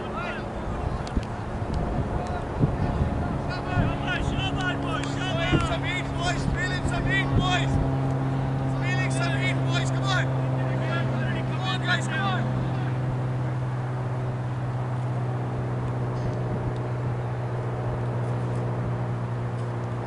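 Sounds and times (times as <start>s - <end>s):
distant voices: 0.0s - 20.0s
low engine hum: 0.0s - 20.0s.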